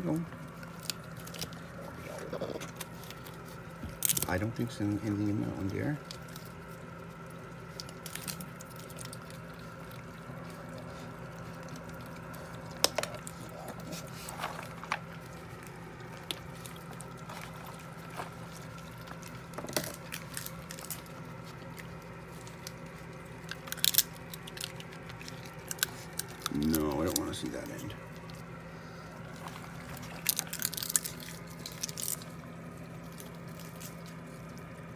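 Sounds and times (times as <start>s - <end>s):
animal chewing peanuts: 0.0s - 34.9s.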